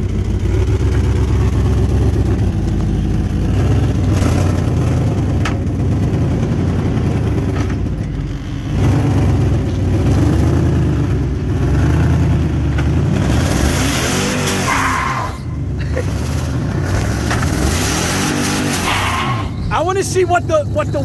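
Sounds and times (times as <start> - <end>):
truck engine rumbling: 0.0 - 21.0.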